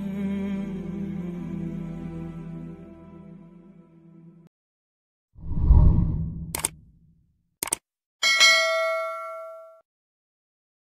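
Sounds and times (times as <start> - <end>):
mouse click: 6.4 - 6.8
bell-like notification ding: 8.2 - 9.8.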